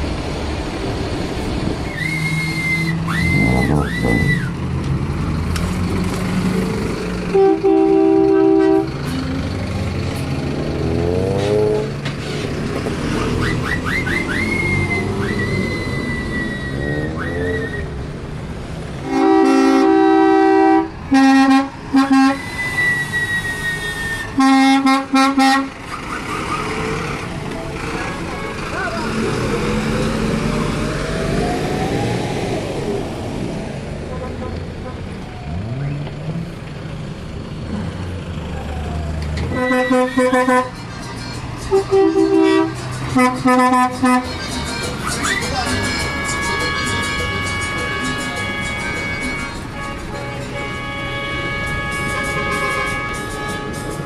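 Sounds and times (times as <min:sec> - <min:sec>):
bus engines rumbling: 0:00.0 - 0:54.0
bus horns honking: 0:01.8 - 0:04.6, 0:06.5 - 0:18.2, 0:18.8 - 0:31.1, 0:34.0 - 0:35.8, 0:39.4 - 0:54.0.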